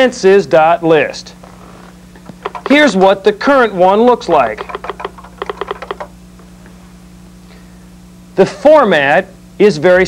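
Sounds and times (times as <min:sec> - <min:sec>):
steady low hum: 0:00.0 - 0:10.0
keyboard typing: 0:02.4 - 0:02.9, 0:04.3 - 0:06.1.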